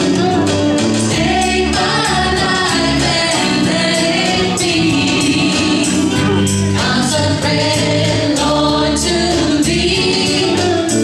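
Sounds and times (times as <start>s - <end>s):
worship band playing: 0.0s - 11.0s.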